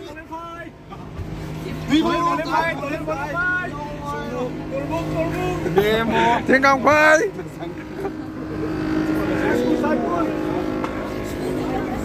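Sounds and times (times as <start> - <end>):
bus engine humming: 0.0 - 12.0
passengers chattering: 0.0 - 12.0.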